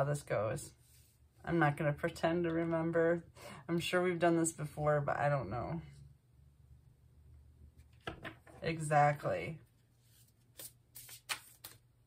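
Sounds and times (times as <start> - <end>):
cards being shuffled: 10.0 - 12.0.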